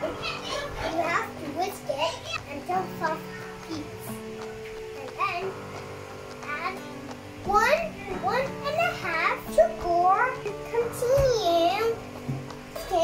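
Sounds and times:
background music with held tones: 0.0s - 13.0s.

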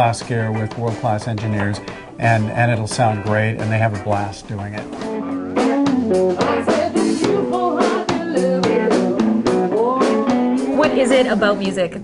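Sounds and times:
rock band playing: 0.0s - 12.0s
woman singing: 5.6s - 12.0s.

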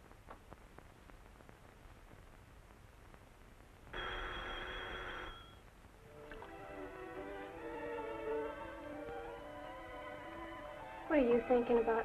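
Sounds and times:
old telephone bell ringing: 4.0s - 5.6s.

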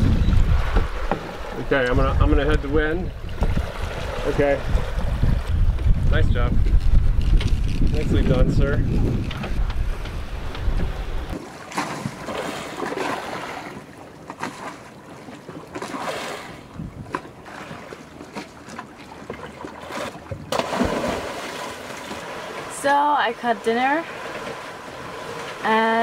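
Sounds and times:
wind on microphone: 0.0s - 11.4s, 16.6s - 17.2s
water rushing and splashing along hulls: 0.0s - 26.0s.

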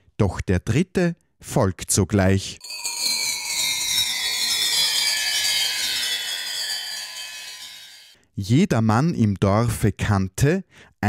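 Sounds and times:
high tones gliding downward: 2.6s - 8.2s.

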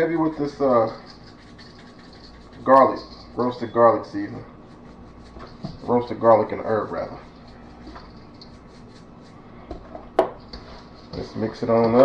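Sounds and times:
seasoning shaker shaking: 0.0s - 9.6s, 10.4s - 12.0s.

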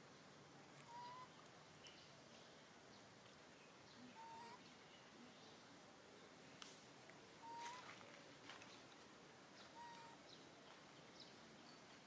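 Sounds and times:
thin whistle-like animal call: 0.8s - 1.3s, 7.4s - 7.8s.

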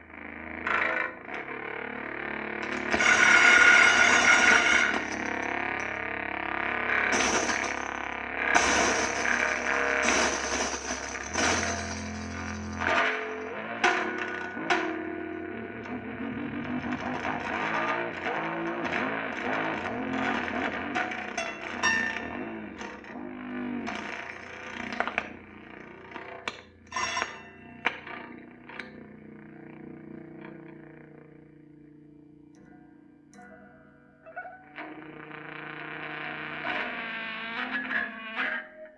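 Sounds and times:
distorted guitar drone: 0.0s - 32.9s, 34.3s - 38.9s.

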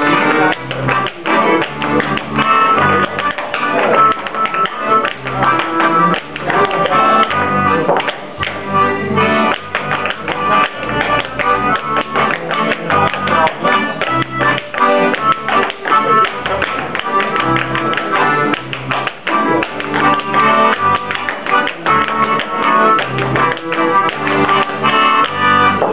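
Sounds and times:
accordion dance tune: 0.0s - 25.9s
clogs tapping on wooden floor: 0.5s - 8.6s, 9.5s - 25.9s.

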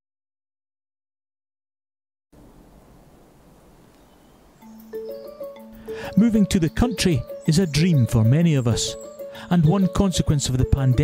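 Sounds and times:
faint background noise: 2.4s - 11.0s
soft music with bell-like mallet notes: 4.6s - 11.0s.

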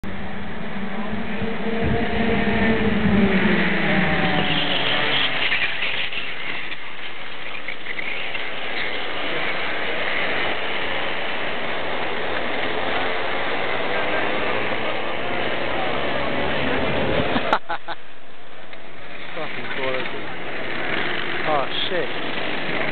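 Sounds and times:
kart engines passing: 0.1s - 22.9s.

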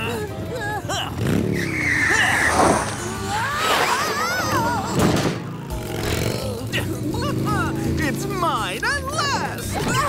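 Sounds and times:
cartoon motorcycle engine revving: 0.1s - 10.0s
tyre screech: 1.5s - 4.6s.

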